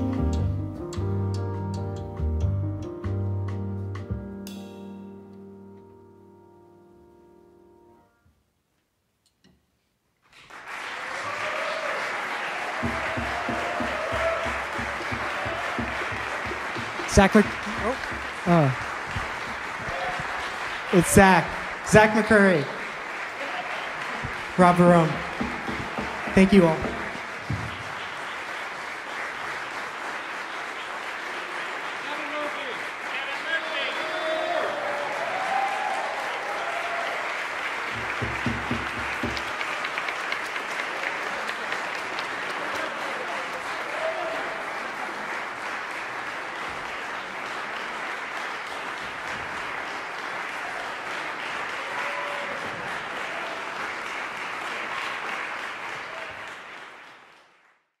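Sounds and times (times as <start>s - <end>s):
audience applauding: 10.2s - 57.9s.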